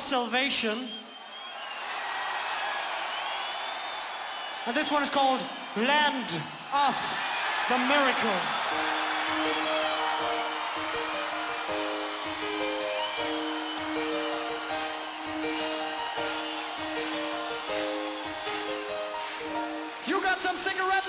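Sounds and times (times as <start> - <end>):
concert crowd noise: 0.0 - 21.0.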